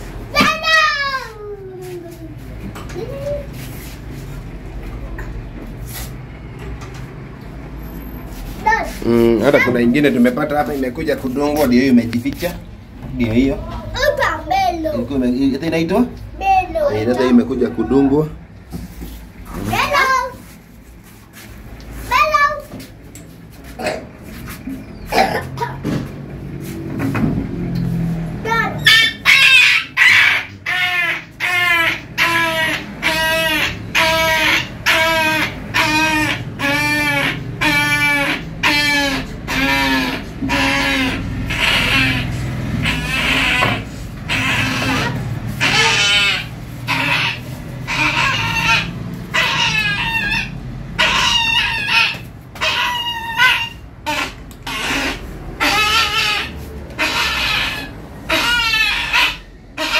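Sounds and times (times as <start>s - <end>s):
puppy yelping: 28.5s - 59.9s.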